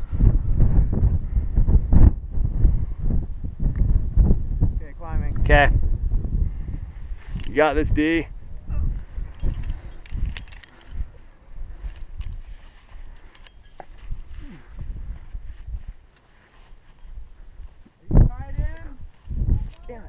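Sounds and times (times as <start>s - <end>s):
wind buffeting microphone: 0.0s - 20.0s
climbing hardware clicking: 9.3s - 11.1s, 13.1s - 14.1s.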